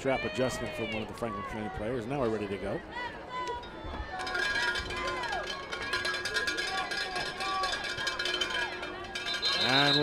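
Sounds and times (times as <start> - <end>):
outdoor crowd noise: 0.0 - 10.0.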